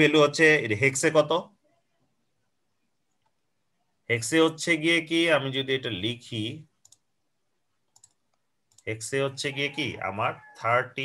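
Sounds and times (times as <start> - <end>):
faint clicks: 6.8 - 7.1, 7.9 - 8.9
person talking: 8.8 - 11.0.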